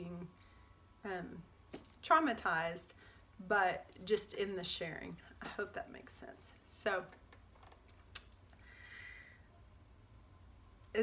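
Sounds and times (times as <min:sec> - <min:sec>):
low room hum: 0:00.0 - 0:11.0
faint airy sound: 0:08.5 - 0:10.1.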